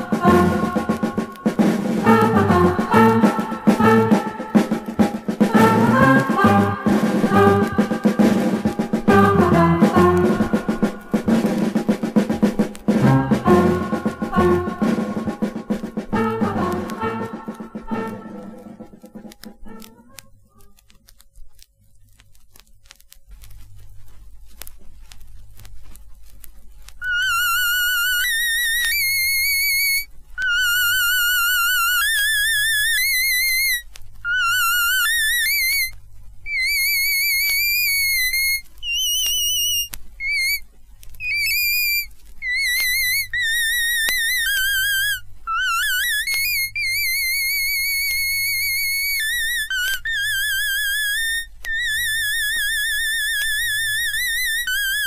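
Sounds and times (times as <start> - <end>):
squeaky wobbling instrument tune: 0.0 - 20.8, 27.0 - 40.6, 41.2 - 55.0
record crackle: 0.0 - 55.0.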